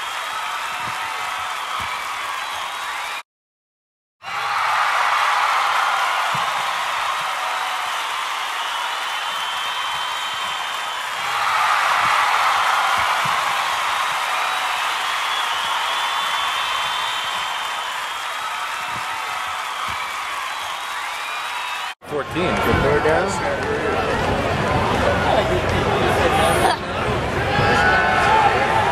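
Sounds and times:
crowd cheering and applauding: 0.0s - 3.2s, 4.2s - 28.9s
high whoops and whistles: 5.8s - 22.0s.

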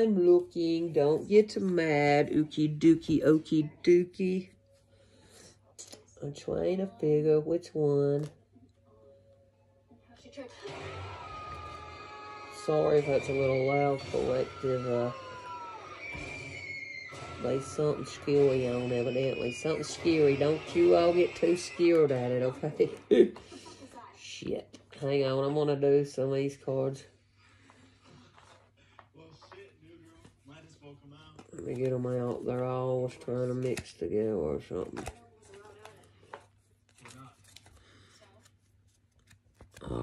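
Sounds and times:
cards rustling: 18.5s - 23.7s, 31.3s - 40.0s.

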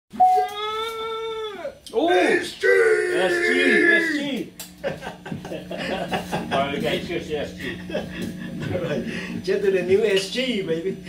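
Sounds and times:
man shouting excitedly: 1.4s - 4.4s.

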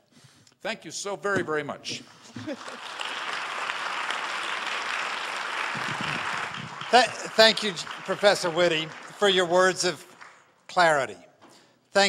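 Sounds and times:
audience applauding: 2.2s - 10.5s.

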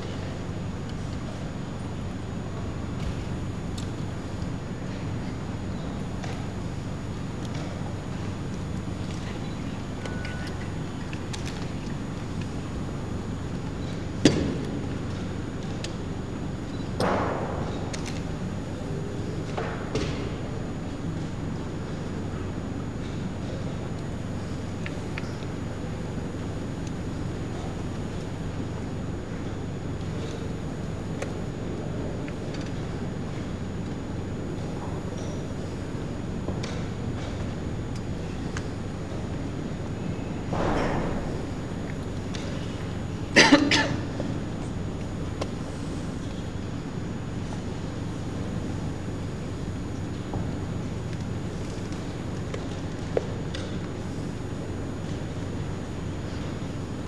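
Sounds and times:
room noise with low hum: 0.0s - 57.0s.

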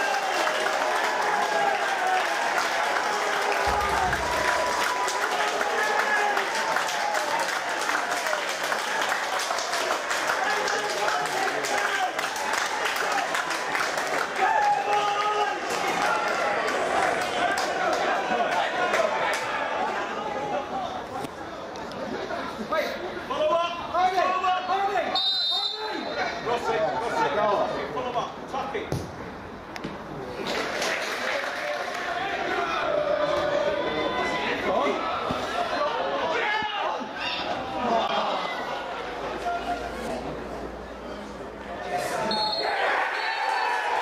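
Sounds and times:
spectators shouting: 0.0s - 9.1s, 42.1s - 44.0s
referee whistle blast: 25.1s - 26.0s, 42.3s - 43.6s.

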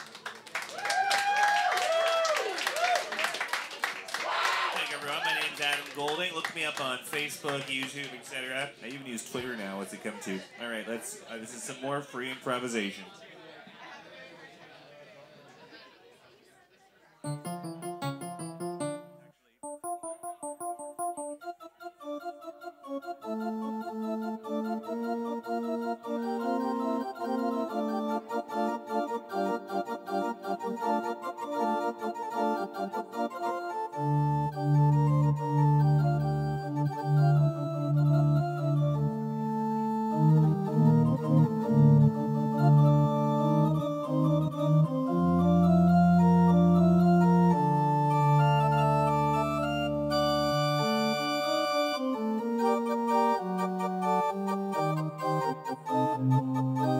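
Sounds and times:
electronic keyboard improvising: 17.2s - 56.9s.

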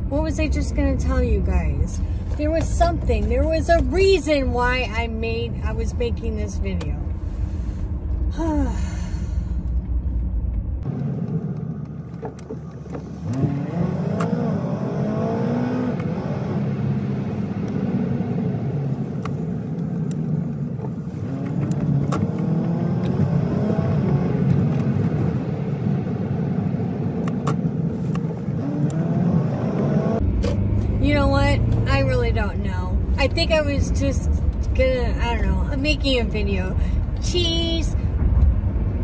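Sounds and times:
road noise inside car: 0.0s - 39.0s
car engine accelerating: 8.0s - 35.7s.

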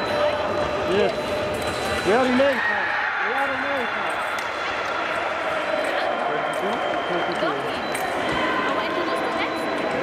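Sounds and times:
hall background noise: 0.0s - 10.0s.

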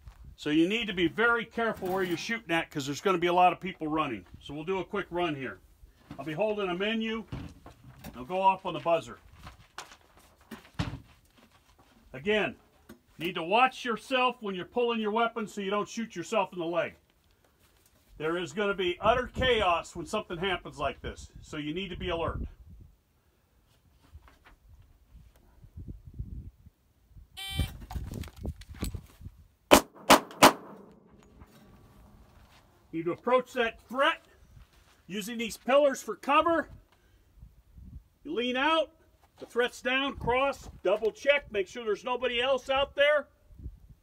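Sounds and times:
shot timer beep: 27.4s - 27.8s
handgun shots echoing: 29.7s - 31.4s.

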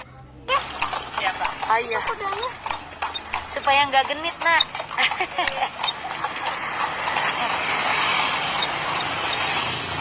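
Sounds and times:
horse hooves clip-clopping on pavement: 0.5s - 10.0s.

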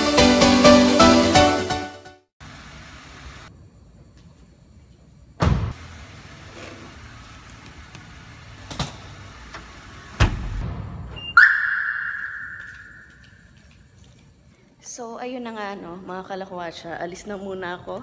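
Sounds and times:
car door thudding shut: 5.4s - 5.8s, 10.2s - 10.8s
car alarm beep: 11.1s - 13.4s.

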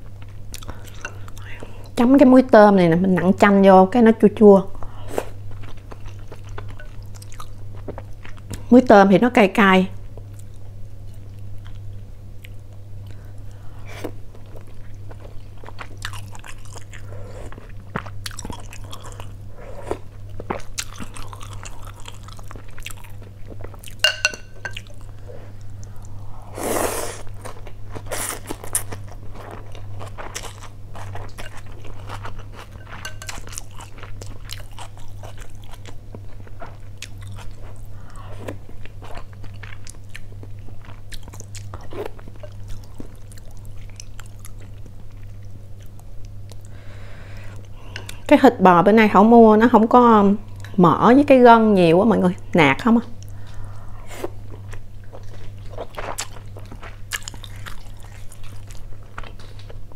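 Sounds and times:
steady low hum: 0.0s - 59.9s
person chewing and crunching: 0.2s - 1.8s, 5.1s - 8.7s, 14.0s - 26.2s, 27.0s - 46.8s, 53.2s - 59.9s.

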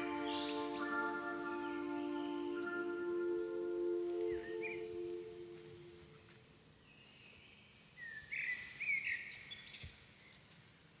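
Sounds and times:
bird chirps: 0.0s - 3.3s
faint ambient hiss: 0.0s - 11.0s.

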